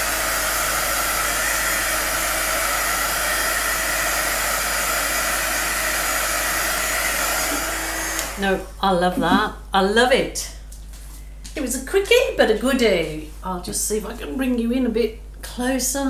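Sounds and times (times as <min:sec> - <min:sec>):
heat gun blowing air: 0:00.0 - 0:08.6.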